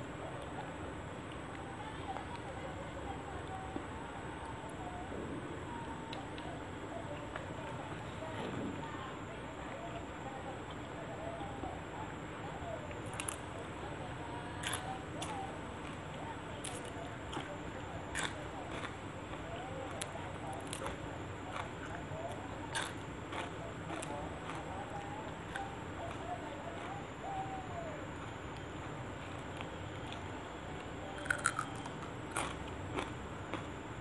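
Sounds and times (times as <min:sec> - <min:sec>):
hooting call: 0:23.5 - 0:28.8.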